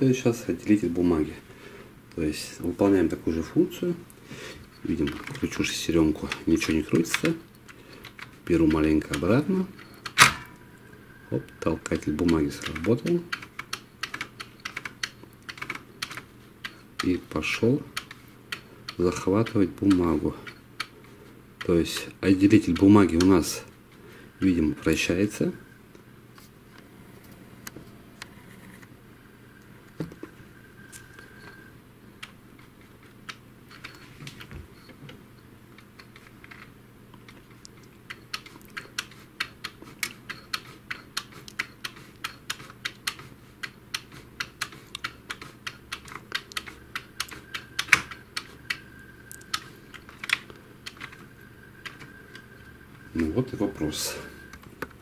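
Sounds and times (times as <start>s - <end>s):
printer mechanism plastic clicking: 4.9s - 7.4s, 8.0s - 10.6s, 11.8s - 21.0s, 35.8s - 52.5s.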